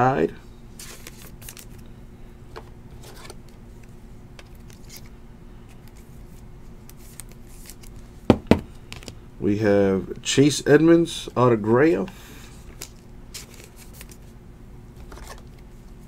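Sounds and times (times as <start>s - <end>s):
faint steady hum: 0.0s - 16.0s
cards scraping and clicking: 2.6s - 5.1s, 5.7s - 8.0s, 12.7s - 14.2s, 15.0s - 15.7s.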